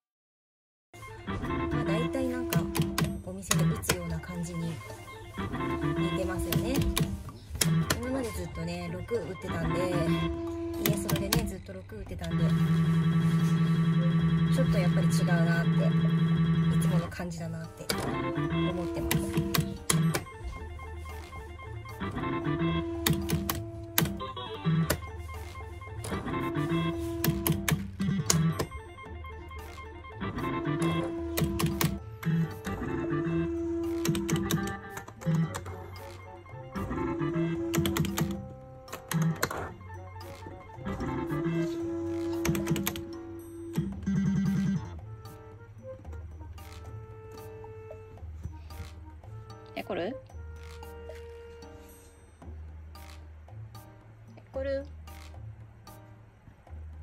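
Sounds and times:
loud held electronic tone: 0:01.4 - 0:11.6, 0:12.2 - 0:35.9, 0:40.3 - 0:45.0
slot machine button clicks: 0:01.6 - 0:04.1, 0:05.8 - 0:08.4, 0:09.6 - 0:11.6, 0:17.8 - 0:20.4, 0:22.2 - 0:28.9, 0:29.6 - 0:44.9.

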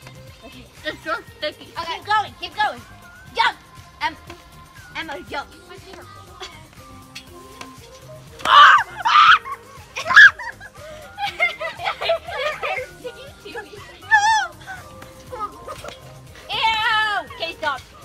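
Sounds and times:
girls laughing and shrieking: 0:08.4 - 0:18.0.

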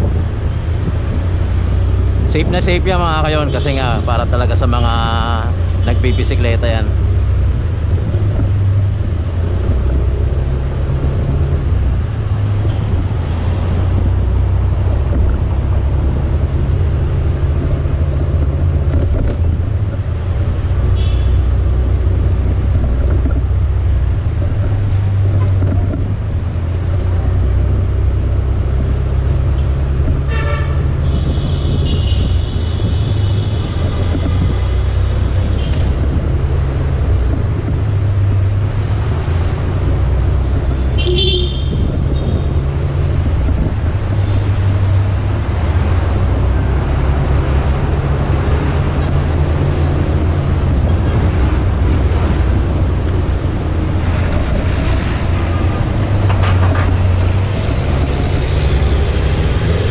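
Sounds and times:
wind on microphone: 0:00.0 - 0:02.6, 0:07.4 - 0:20.8, 0:21.9 - 0:59.9
vehicle horns tooting: 0:21.0 - 0:21.5, 0:30.2 - 0:34.1, 0:40.9 - 0:42.5.

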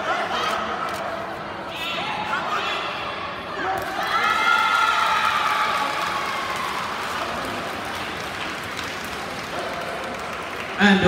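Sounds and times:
crowd applauding and cheering: 0:04.1 - 0:11.0.

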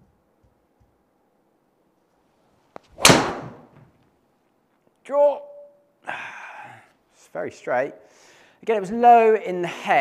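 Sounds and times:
golf driver striking ball: 0:03.0 - 0:03.7.

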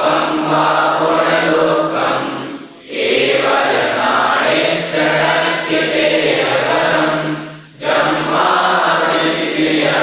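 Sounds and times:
group chanting in unison: 0:00.0 - 0:10.0.

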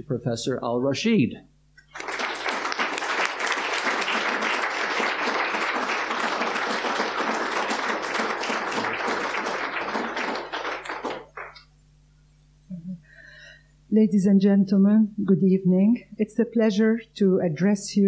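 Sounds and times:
audience applauding: 0:01.8 - 0:11.6.

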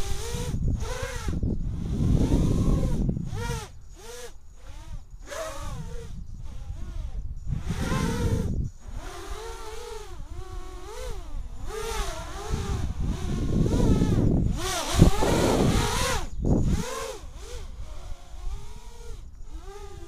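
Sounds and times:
quadcopter motors whining: 0:00.0 - 0:20.0.

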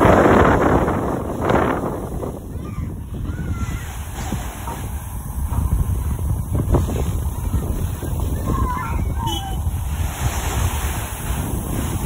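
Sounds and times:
wind buffeting microphone: 0:00.0 - 0:12.0
waves washing onto pebble beach: 0:03.1 - 0:12.0.

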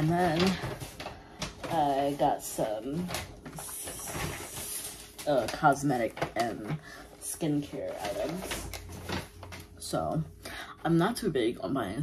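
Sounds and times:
rustling of items being handled: 0:00.0 - 0:11.3.

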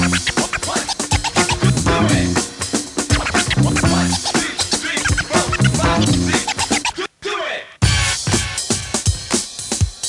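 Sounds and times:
hip hop drum beat: 0:00.0 - 0:07.0, 0:07.8 - 0:10.0
turntable scratching: 0:00.0 - 0:07.1.

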